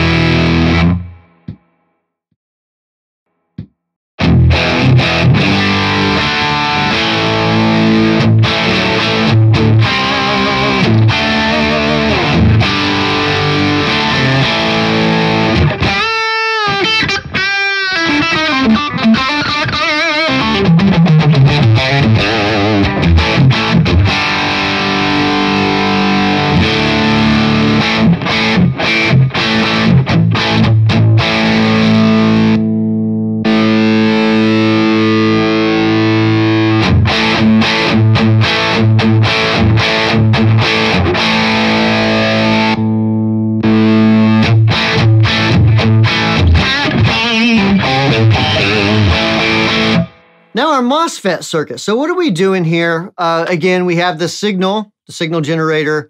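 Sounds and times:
distorted electric guitar: 0.0s - 1.7s, 4.2s - 53.7s.

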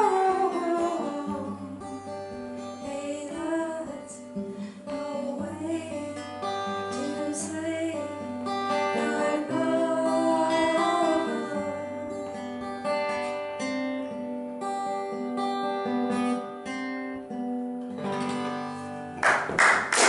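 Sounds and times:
woman singing: 0.0s - 12.2s
fingerpicked acoustic guitar: 0.0s - 19.9s.

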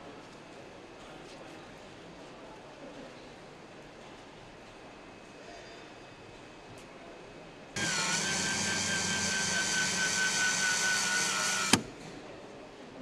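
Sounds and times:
power tool motor whining: 7.8s - 11.9s
power tool switch click: 7.8s - 11.9s.

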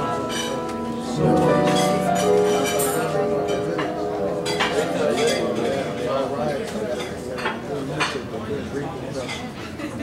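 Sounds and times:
dishes and cutlery clinking: 0.1s - 8.5s, 9.1s - 9.8s.

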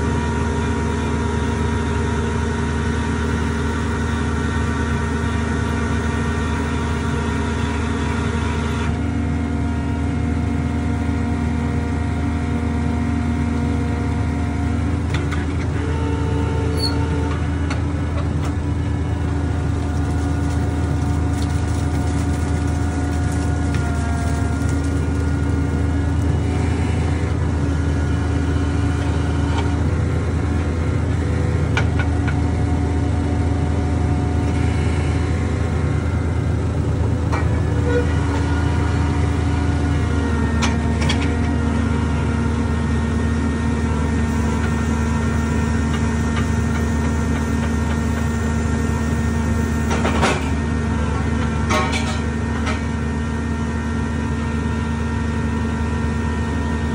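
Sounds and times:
drilling rig engine and hydraulics: 0.0s - 56.9s.

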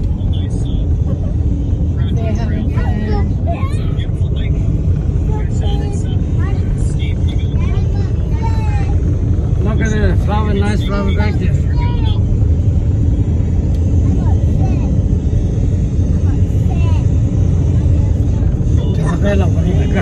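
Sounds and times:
people talking: 0.0s - 1.4s, 2.0s - 9.0s, 9.6s - 12.3s, 14.0s - 15.1s, 16.0s - 20.0s
car rumble from inside cabin: 0.0s - 20.0s.

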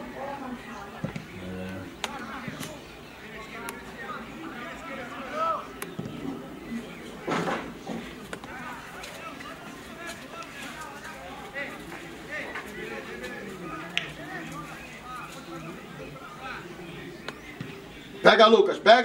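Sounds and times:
distant voices calling out: 0.0s - 19.0s.

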